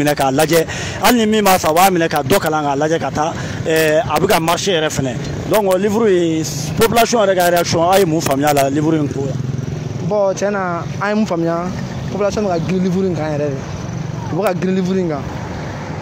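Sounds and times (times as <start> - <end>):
man talking: 0.0 - 9.4, 10.0 - 13.7, 14.3 - 15.3
street traffic din: 0.0 - 16.0.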